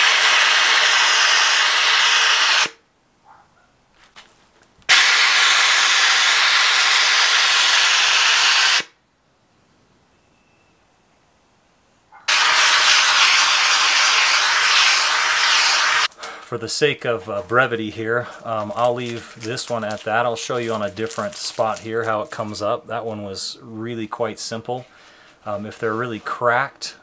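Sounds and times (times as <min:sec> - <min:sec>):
steam cleaner hissing: 0:00.0 - 0:02.8, 0:04.9 - 0:08.9, 0:12.3 - 0:16.1.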